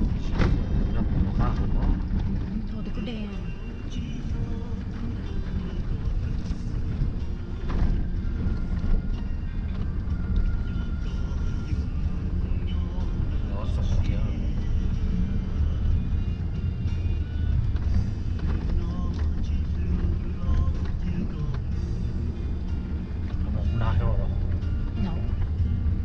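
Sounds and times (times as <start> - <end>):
vehicle rumble on gravel road: 0.0 - 26.0.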